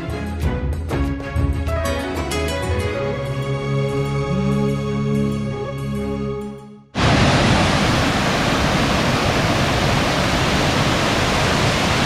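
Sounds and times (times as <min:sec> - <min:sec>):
background music: 0:00.0 - 0:07.0
stream rushing over rocks: 0:07.0 - 0:12.0.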